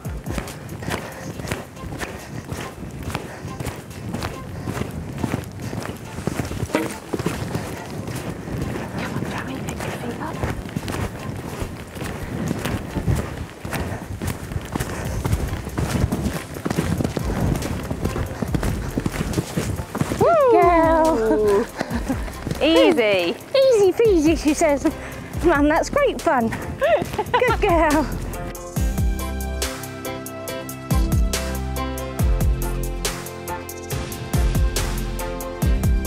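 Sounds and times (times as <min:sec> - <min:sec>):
hoofbeats on sand: 0:00.0 - 0:30.0.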